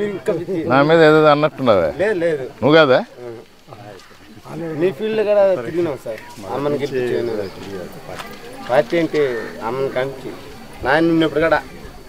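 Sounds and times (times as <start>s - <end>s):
man talking: 0.0s - 11.8s.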